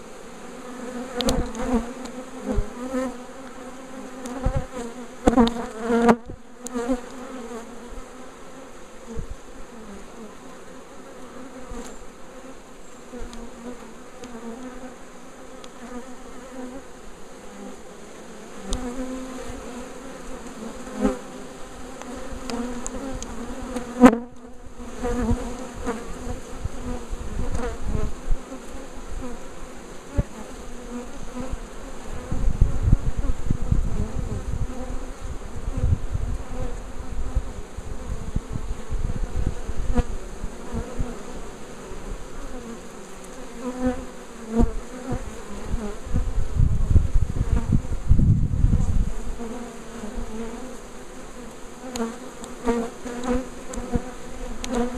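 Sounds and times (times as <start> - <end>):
bee swarm buzzing: 0.0 - 54.9.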